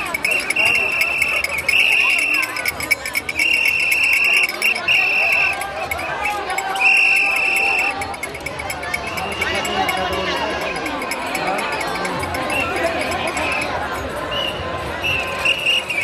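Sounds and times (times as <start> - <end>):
crowd chatter: 0.0 - 16.0
whistle blasts: 0.1 - 8.0, 14.3 - 16.0.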